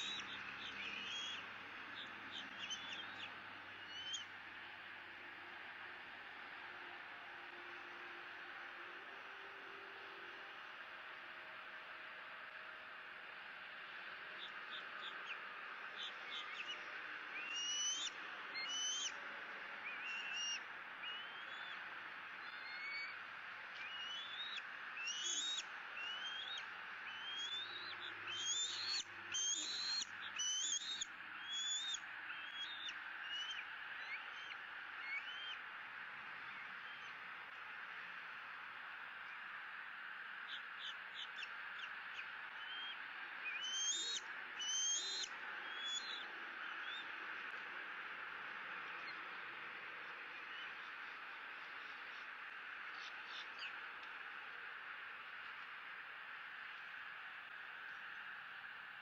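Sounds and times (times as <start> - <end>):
eagles chirping: 0.0 - 4.3, 16.0 - 19.2, 23.8 - 35.6, 40.5 - 47.1
steady background hiss: 0.0 - 59.0.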